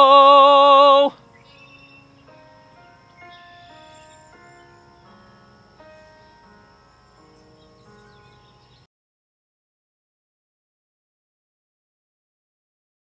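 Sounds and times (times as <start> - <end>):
slow held instrumental chords: 0.0 - 8.9.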